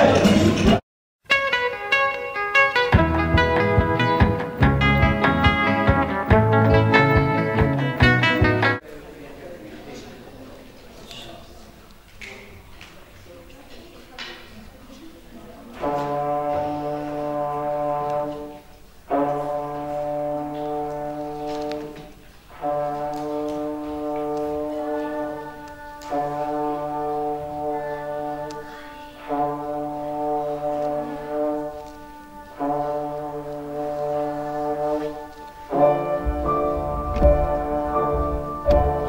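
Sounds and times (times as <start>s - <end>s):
trombone playing low note: 32.6s - 39.0s.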